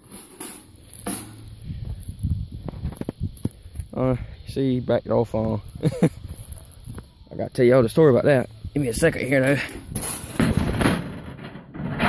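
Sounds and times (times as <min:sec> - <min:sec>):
dry grass rustling and crackling: 0:00.0 - 0:04.0, 0:05.2 - 0:11.0.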